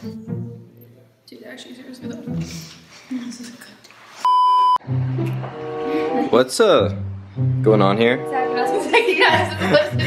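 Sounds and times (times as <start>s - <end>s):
electronic bleep tone: 4.3s - 4.8s.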